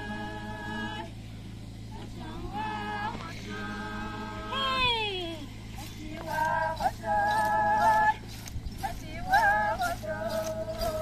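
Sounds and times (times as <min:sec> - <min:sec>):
women chanting: 0:00.0 - 0:01.2, 0:01.9 - 0:11.0.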